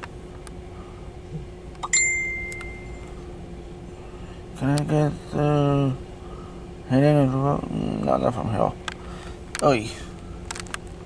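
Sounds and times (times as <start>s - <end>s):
faint steady hum: 0.0s - 11.0s
bell-like ding: 1.8s - 3.1s.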